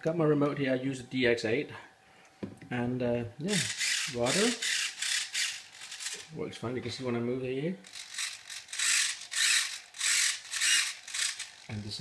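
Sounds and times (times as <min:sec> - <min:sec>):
servos whirring: 0:03.5 - 0:06.3, 0:07.9 - 0:12.0.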